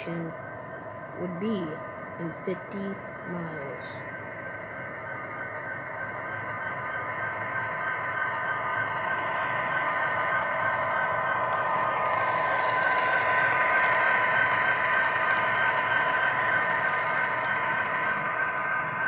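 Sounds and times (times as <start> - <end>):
model train running past: 0.0 - 19.0.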